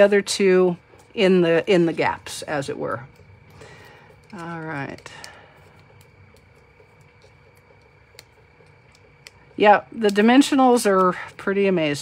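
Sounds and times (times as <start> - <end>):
fingers handling paper ticks: 3.0 - 9.5.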